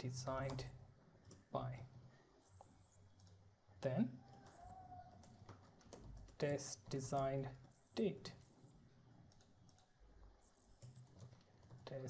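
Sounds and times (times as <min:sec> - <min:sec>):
faint keyboard typing: 0:00.0 - 0:12.0.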